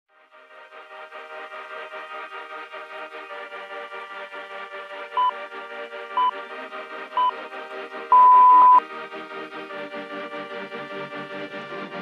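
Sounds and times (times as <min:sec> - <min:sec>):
background music: 0:00.1 - 0:12.0
timer short beeps: 0:08.1 - 0:08.8.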